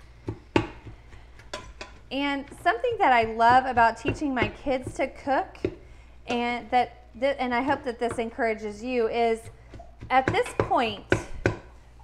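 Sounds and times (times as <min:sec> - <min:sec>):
wooden spoon knocking on metal pot: 0:00.2 - 0:06.5, 0:07.6 - 0:08.6, 0:09.3 - 0:11.8.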